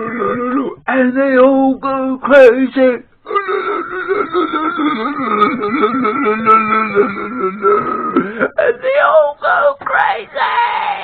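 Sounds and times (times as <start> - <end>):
man laughing in wailing peals: 3.3 - 8.2.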